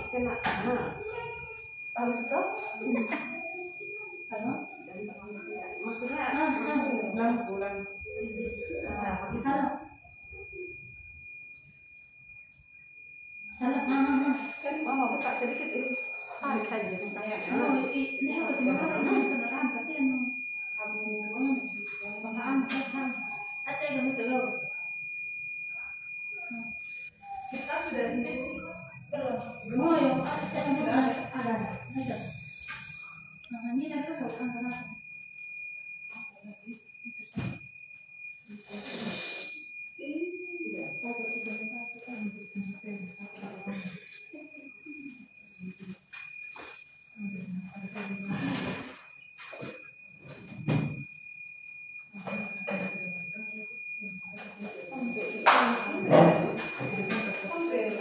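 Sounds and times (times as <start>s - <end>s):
high-pitched electronic tone: 0.0s - 12.1s, 25.6s - 53.5s, 54.3s - 58.0s.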